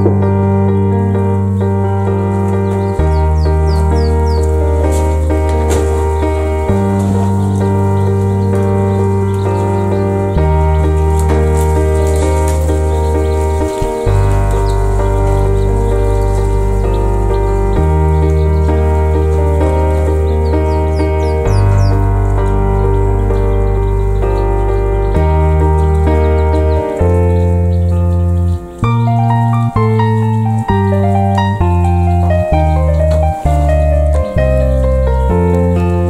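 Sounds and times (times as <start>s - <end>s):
chicks peeping: 0.0s - 36.0s
held keyboard chords: 0.0s - 36.0s.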